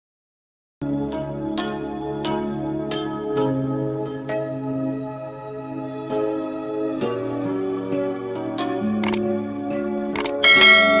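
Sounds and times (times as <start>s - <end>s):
soft background music: 0.8s - 11.0s
double mouse click: 9.0s - 9.2s, 10.2s - 10.4s
bright bell chime: 10.4s - 11.0s.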